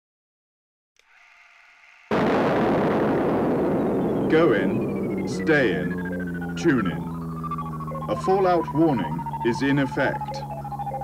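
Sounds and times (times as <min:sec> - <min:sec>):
faint hiss with hazy tones: 0:02.1 - 0:08.1.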